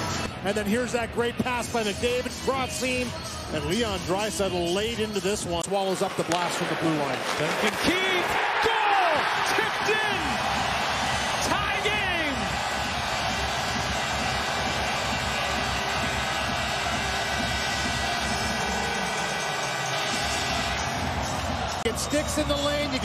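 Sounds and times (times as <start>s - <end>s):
crowd roaring and cheering: 6.1s - 23.0s
loud shouts: 7.7s - 13.5s.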